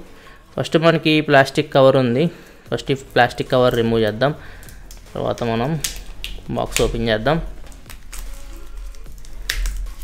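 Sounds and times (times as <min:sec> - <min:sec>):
faint background music: 0:00.0 - 0:10.0
plastic shrink-wrap crinkling: 0:02.5 - 0:10.0.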